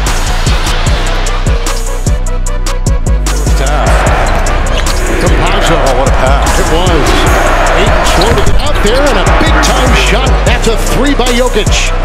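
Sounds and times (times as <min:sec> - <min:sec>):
music with steady beat: 0:00.0 - 0:12.0
commentator exclaiming: 0:05.0 - 0:11.9.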